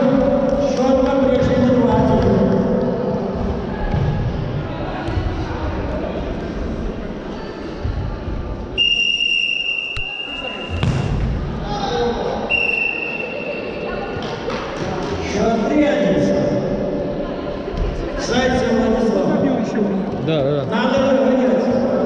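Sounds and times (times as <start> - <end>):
voices of players and spectators: 0.0 - 22.0
ball kicked with a thud: 10.7 - 11.4
referee's whistle blast: 12.5 - 13.6.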